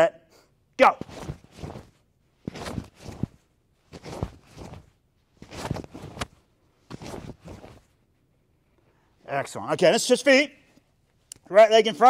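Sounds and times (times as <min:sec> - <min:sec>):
fabric swishing and snapping: 0:00.9 - 0:08.0.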